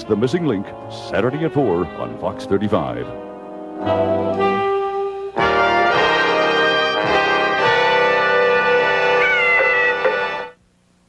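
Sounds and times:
music closing chord: 0.0 - 10.6.

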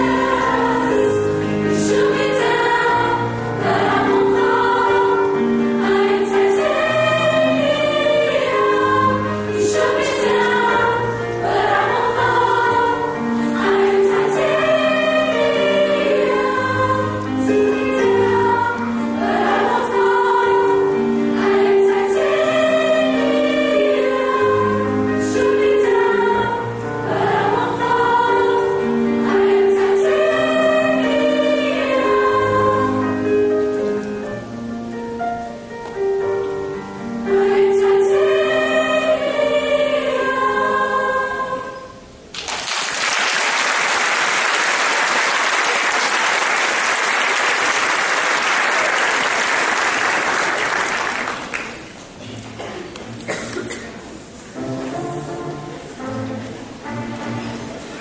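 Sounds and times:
choir singing in harmony: 0.0 - 35.0, 36.0 - 42.3, 54.5 - 58.0.

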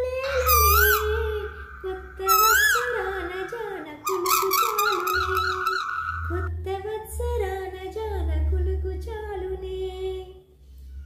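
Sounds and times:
high whistle-like sliding tone: 0.0 - 6.5
woman singing: 0.0 - 10.4
steady low hum: 0.0 - 11.0.

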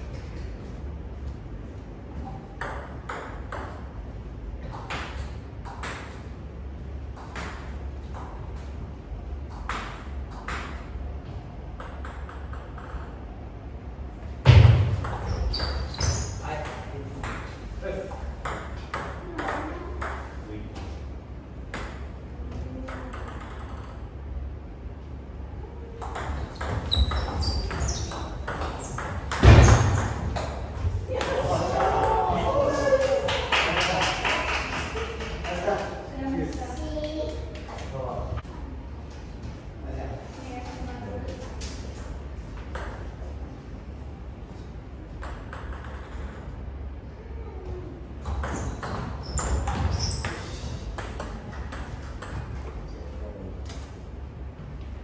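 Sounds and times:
table tennis ball hits: 2.5 - 3.9, 4.6 - 6.2, 7.1 - 8.4, 9.5 - 11.0, 11.8 - 13.2, 14.4 - 17.6, 21.7 - 22.2, 22.8 - 24.1, 26.0 - 32.1, 45.2 - 46.5, 48.2 - 52.6.

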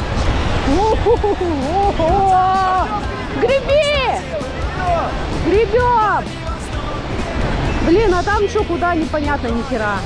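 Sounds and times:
background music: 0.0 - 10.0
whitewater rushing: 0.0 - 10.0.

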